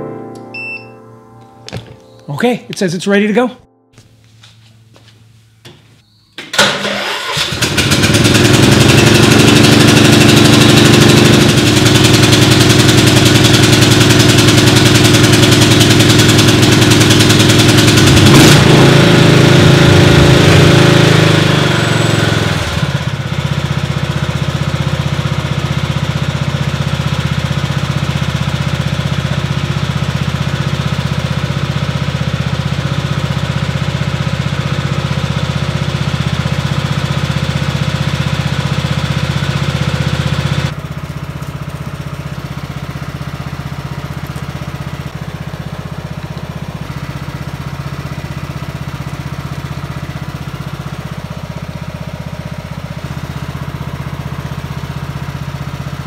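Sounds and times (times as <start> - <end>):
riding lawn mower engine: 6.4 - 56.0.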